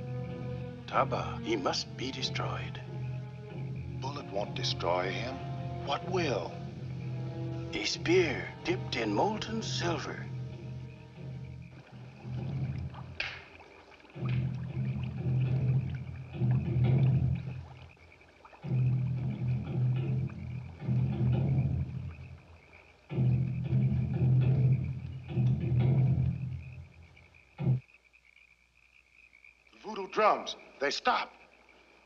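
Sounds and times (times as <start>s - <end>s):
deep film soundtrack music: 0.0s - 27.9s.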